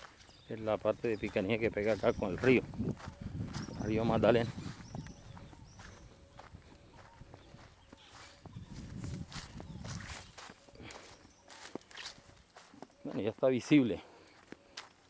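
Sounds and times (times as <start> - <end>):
footsteps through dry grass: 0.0 - 15.0
crackling stems and leaves: 7.8 - 13.6.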